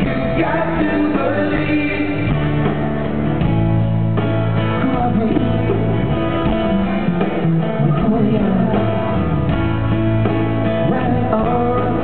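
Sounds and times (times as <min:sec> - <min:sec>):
electric guitar: 0:00.0 - 0:12.0
live rock band playing: 0:00.0 - 0:12.0.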